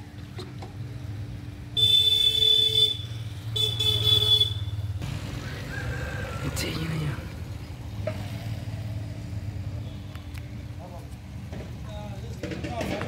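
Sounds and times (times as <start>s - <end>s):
vehicle horn honking: 1.8s - 4.9s.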